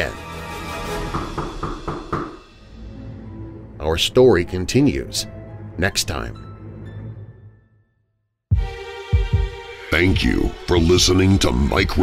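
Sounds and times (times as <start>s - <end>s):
dark background music: 0.0s - 12.0s
knocking on a door: 1.0s - 2.4s.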